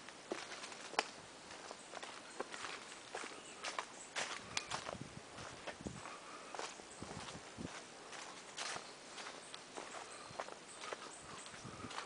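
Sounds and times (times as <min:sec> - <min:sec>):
footsteps crunching dry leaves: 0:00.1 - 0:12.0.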